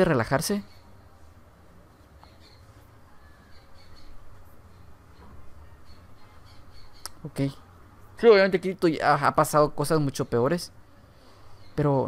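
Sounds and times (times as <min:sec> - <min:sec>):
faint soundtrack music: 0:00.0 - 0:12.0.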